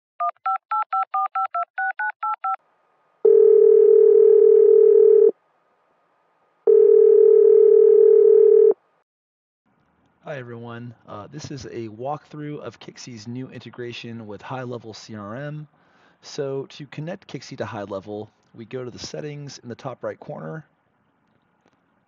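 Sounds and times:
telephone ringing tone: 3.2s - 5.4s, 6.7s - 8.8s.

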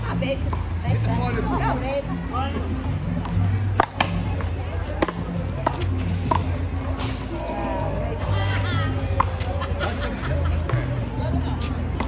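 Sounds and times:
background music: 0.0s - 12.0s
ball struck by paddles: 3.2s - 7.3s.

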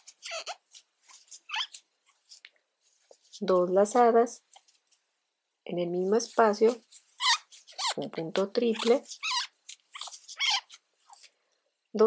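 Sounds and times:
animal whining: 0.0s - 1.8s, 7.2s - 8.0s, 8.7s - 11.2s.

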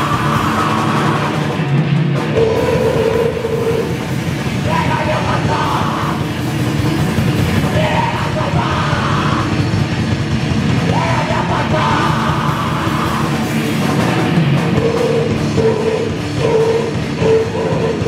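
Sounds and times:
shouted vocals: 0.0s - 1.4s, 7.7s - 9.6s, 10.8s - 13.5s
distorted electric guitar: 0.0s - 18.0s
drum kit: 0.0s - 18.0s.

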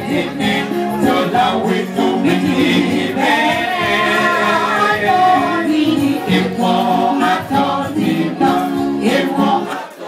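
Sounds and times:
people singing a melody: 0.0s - 10.0s.

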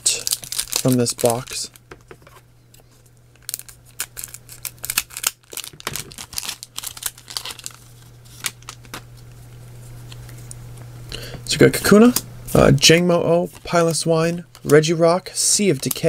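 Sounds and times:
foil wrapper crinkling: 0.0s - 1.8s, 3.3s - 9.4s, 13.4s - 16.0s
steady low hum: 0.0s - 16.0s.

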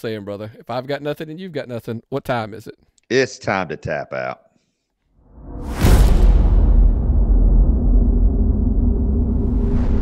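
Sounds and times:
deep cinematic rumble: 5.4s - 10.0s.

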